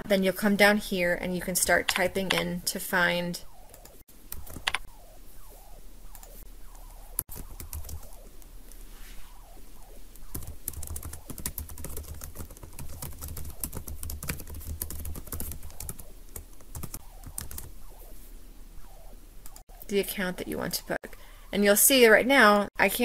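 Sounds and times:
computer keyboard typing: 3.7s - 4.8s, 7.2s - 8.2s, 10.3s - 17.7s.

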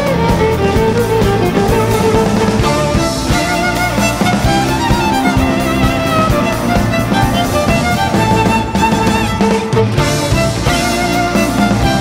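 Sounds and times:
drum kit steady beat: 0.0s - 12.0s
electric bass: 0.0s - 12.0s
guitar: 0.0s - 12.0s
piano: 0.0s - 12.0s
violin: 0.0s - 12.0s.

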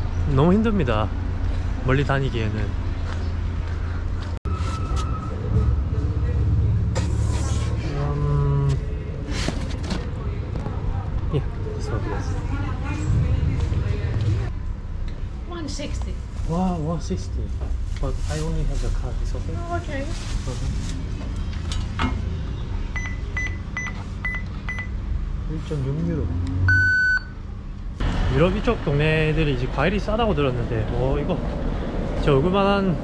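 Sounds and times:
vehicle engine rumbling: 0.0s - 33.0s
steady low rumble: 10.2s - 15.5s.

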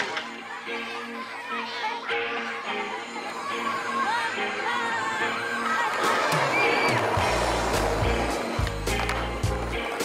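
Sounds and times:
skateboard wheels rolling on concrete: 2.1s - 10.0s
skateboard clacks: 5.9s - 10.0s.

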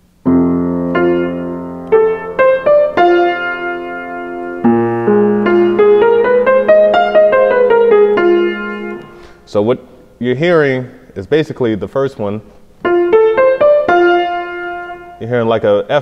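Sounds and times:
grand piano playing: 0.0s - 9.8s, 12.8s - 15.6s.

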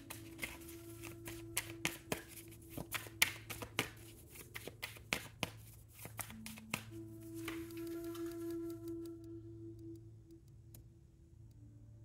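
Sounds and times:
cards clicking: 0.0s - 9.2s.

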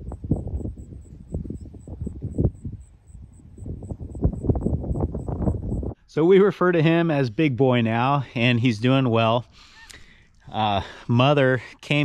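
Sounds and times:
wind buffeting microphone: 0.0s - 6.0s.

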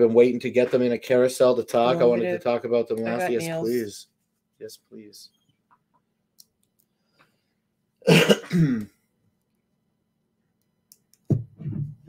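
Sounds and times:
man clearing his throat: 8.1s - 9.0s.

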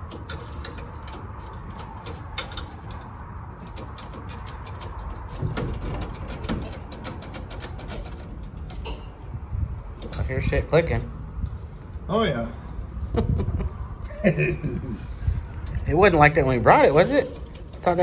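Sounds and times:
ignition key and lock clicking: 0.0s - 9.2s, 16.9s - 18.0s.

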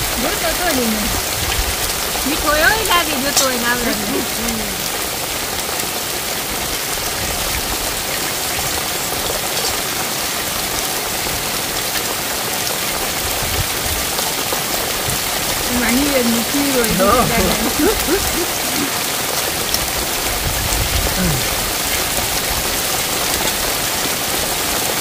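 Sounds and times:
heavy rain on wet ground: 0.0s - 25.0s.

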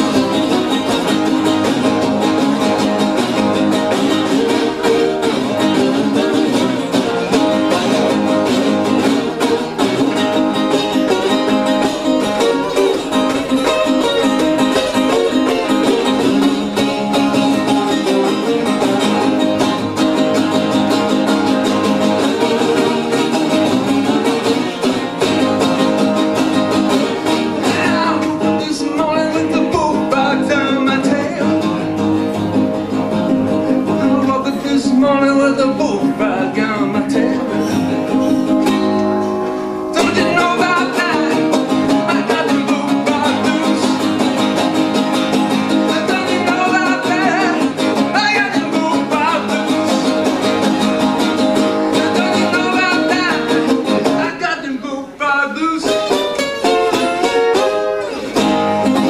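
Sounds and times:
acoustic guitar strumming: 0.0s - 59.0s
man singing: 27.2s - 32.0s, 33.7s - 38.1s, 39.9s - 57.8s.

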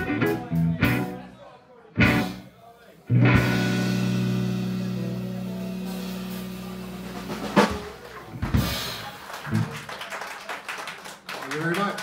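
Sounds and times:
people clapping: 7.7s - 12.0s.

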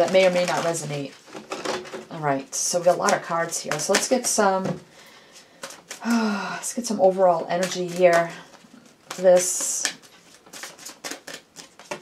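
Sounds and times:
cards flicking and tapping: 2.9s - 4.4s, 5.6s - 6.2s, 7.5s - 12.0s.

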